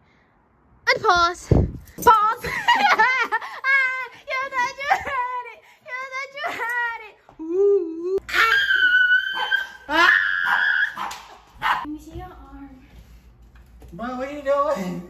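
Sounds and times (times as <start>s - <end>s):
people laughing and giggling: 2.4s - 3.7s
high-pitched cries: 7.4s - 11.1s
small dog barking: 9.3s - 9.8s, 10.4s - 11.9s.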